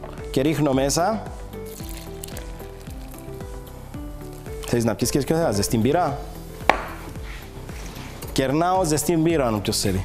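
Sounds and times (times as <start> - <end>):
glass knocking on countertop: 6.7 - 7.0.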